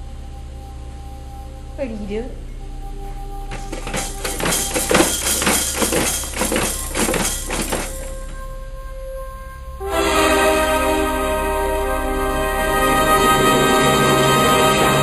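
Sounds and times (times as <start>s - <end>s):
plastic toys clattering: 3.5s - 8.4s
orchestral music with brass: 9.1s - 15.0s.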